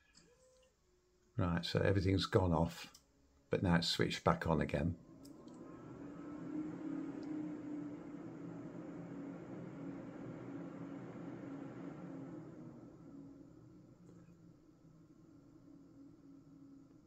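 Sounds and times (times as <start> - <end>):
computer cooling fans whirring: 1.4 - 17.0.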